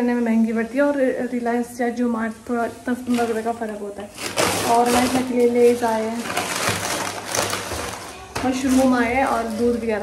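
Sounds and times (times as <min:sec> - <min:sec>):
plastic bag rustling and crinkling: 0:02.8 - 0:10.0.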